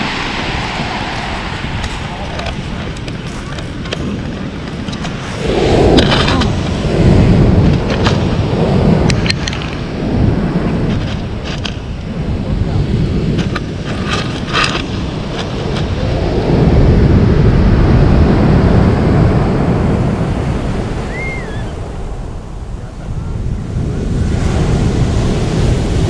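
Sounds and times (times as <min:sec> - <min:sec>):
surf breaking on pebble beach: 0:00.0 - 0:26.0
wind on microphone: 0:00.0 - 0:26.0.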